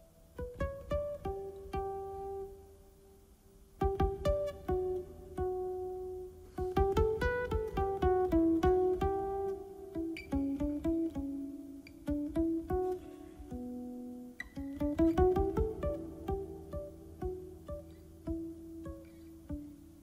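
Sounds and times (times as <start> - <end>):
solo guitar plucked melody: 0.0 - 20.0.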